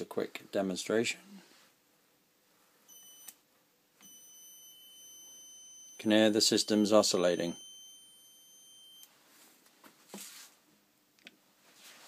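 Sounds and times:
faint high-pitched electronic whine: 2.5s - 9.4s
circuit click: 2.9s - 3.4s.

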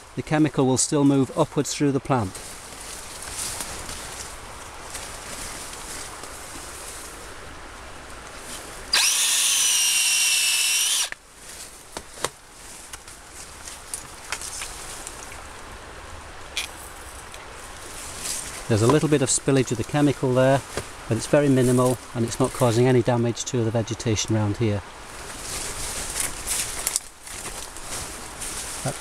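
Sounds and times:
power drill motor whining: 8.9s - 11.2s.

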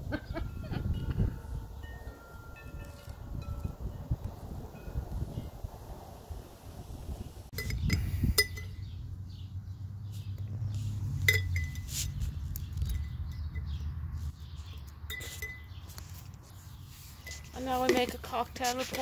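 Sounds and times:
low wind rumble: 0.0s - 14.3s
sharp clicks and clinks: 7.5s - 8.8s.

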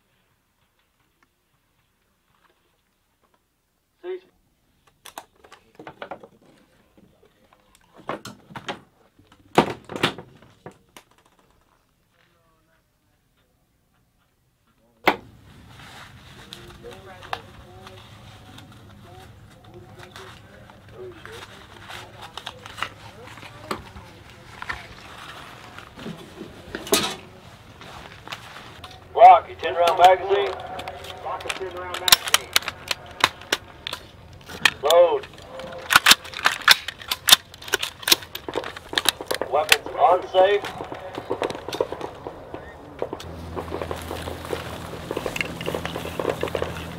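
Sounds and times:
faint distant voices: 10.4s - 46.9s
person shouting a command: 29.1s - 33.2s, 34.8s - 36.0s, 39.4s - 41.4s.

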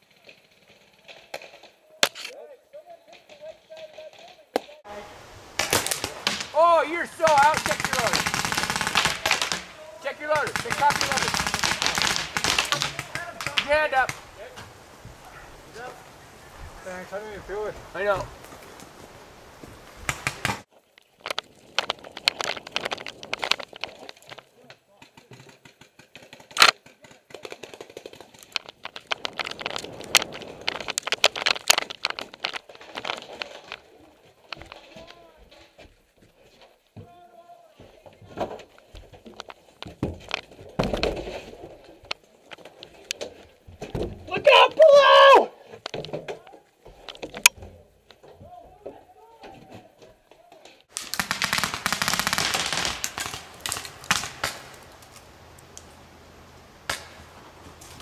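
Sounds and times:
paintball markers firing: 7.1s - 14.2s, 50.9s - 54.8s
person shouting: 44.3s - 45.6s.

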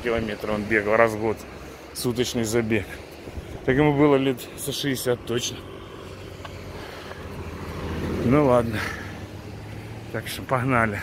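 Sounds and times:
passing vehicle rumble: 0.0s - 11.0s.

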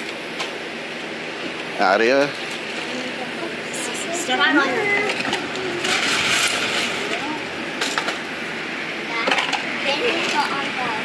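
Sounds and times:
children's voices: 2.8s - 7.6s, 9.0s - 11.0s
gravel pouring: 5.8s - 7.2s.

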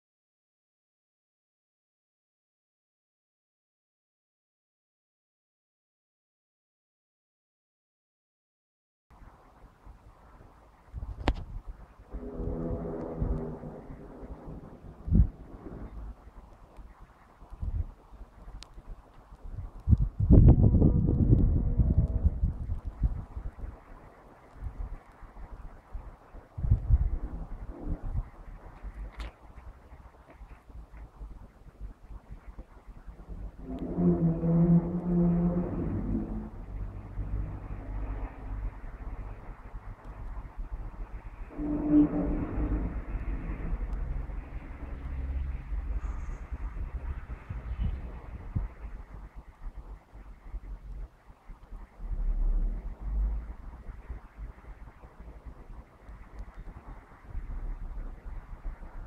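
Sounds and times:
low rumbling noise: 9.1s - 59.0s
low drawn-out tones: 11.1s - 59.0s.

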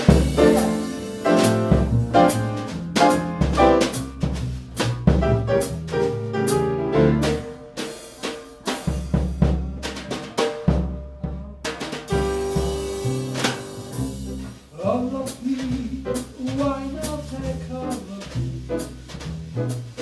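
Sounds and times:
walking bass: 0.0s - 7.9s, 8.6s - 20.0s
upright piano: 0.0s - 11.0s, 12.0s - 20.0s
drum kit played with sticks: 0.0s - 20.0s.

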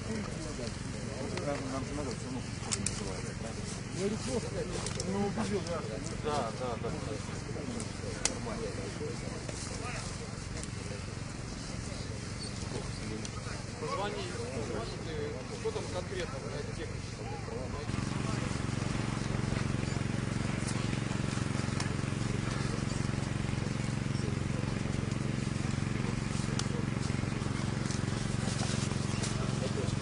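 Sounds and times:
faint indistinct voices: 0.0s - 30.0s
motor droning hum: 0.0s - 30.0s.

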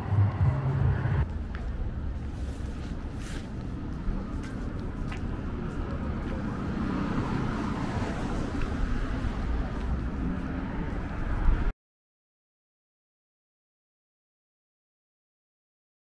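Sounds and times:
traffic rumble: 0.0s - 11.7s
wind: 0.0s - 11.8s.

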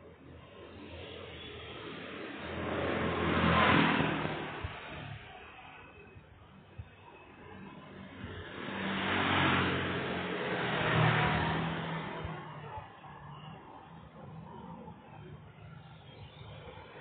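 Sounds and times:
motor scooter passing by: 1.9s - 5.3s, 7.7s - 15.0s.

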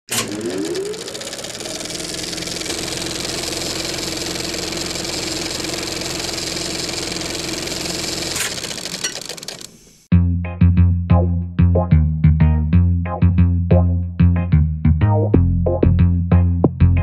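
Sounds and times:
film projector whirring and clattering: 0.1s - 10.1s.

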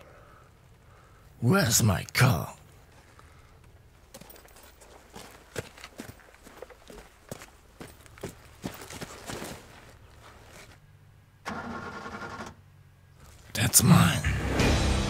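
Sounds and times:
footsteps crunching on gravel: 4.0s - 10.8s.

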